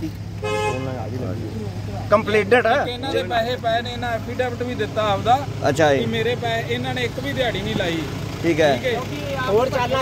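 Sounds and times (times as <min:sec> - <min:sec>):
vehicle horn toot: 0:00.4 - 0:01.1.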